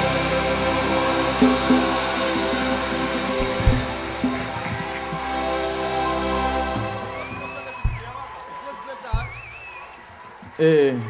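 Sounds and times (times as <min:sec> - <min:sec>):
high hissing wash: 0:00.0 - 0:08.3
gospel band playing instrumental: 0:00.0 - 0:10.2.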